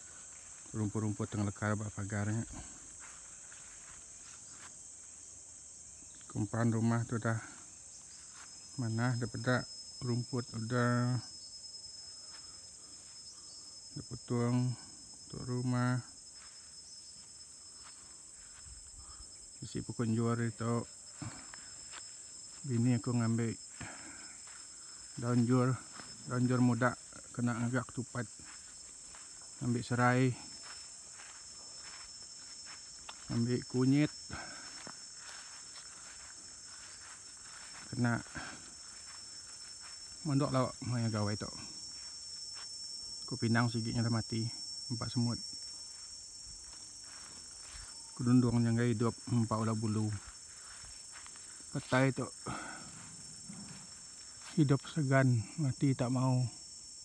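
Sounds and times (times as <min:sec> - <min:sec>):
footsteps on grass: 0:00.0 - 0:06.4, 0:07.0 - 0:09.5, 0:11.8 - 0:56.2
insects chirring: 0:00.0 - 0:57.0.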